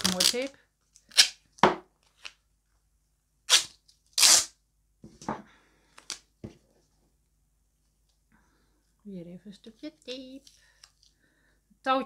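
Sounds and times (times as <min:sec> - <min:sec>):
adhesive tape ripping: 0:00.0 - 0:01.4, 0:03.5 - 0:04.6.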